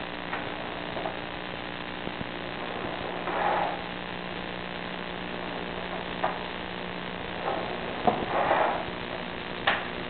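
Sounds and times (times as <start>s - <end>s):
electrical hum: 0.0s - 10.0s
static hiss: 0.0s - 10.0s.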